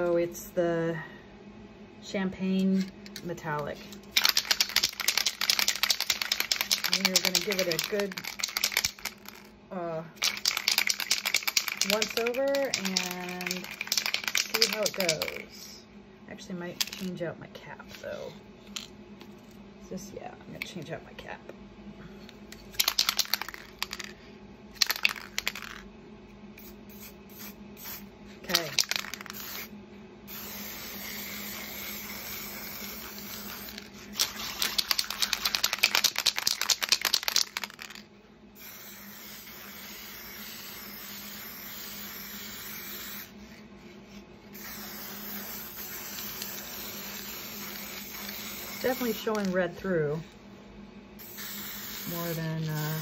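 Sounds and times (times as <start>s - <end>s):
spray can ball rattling: 4.1s - 9.5s, 10.2s - 15.4s, 22.7s - 24.2s, 24.8s - 25.8s, 26.6s - 29.7s, 30.3s - 38.0s, 44.6s - 49.6s, 51.2s - 53.0s
spray paint can hissing: 4.2s - 9.5s, 10.2s - 15.4s, 22.8s - 24.1s, 26.6s - 29.7s, 30.3s - 38.0s, 38.6s - 43.3s, 44.6s - 49.6s, 51.2s - 53.0s.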